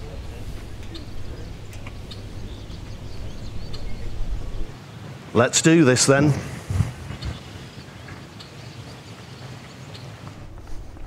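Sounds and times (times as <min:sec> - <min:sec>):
faint bird chirps: 0:00.0 - 0:04.8
breeze rumbling on microphone: 0:00.0 - 0:11.0.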